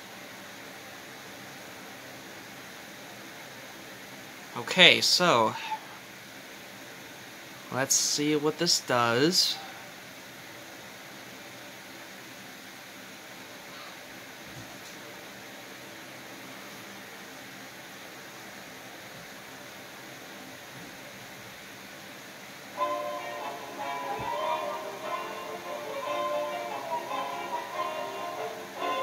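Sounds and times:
room tone hiss: 0.0 - 29.0
music from television speakers: 22.8 - 29.0.

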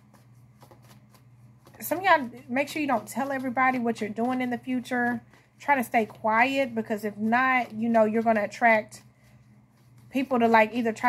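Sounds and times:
cards being shuffled: 0.0 - 10.9.

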